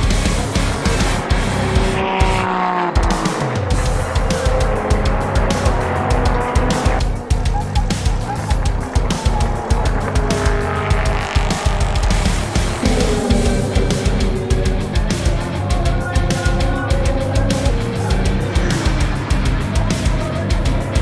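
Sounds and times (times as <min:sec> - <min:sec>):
backing music with steady beat: 0:00.0 - 0:21.0
racing car engines passing: 0:00.2 - 0:21.0.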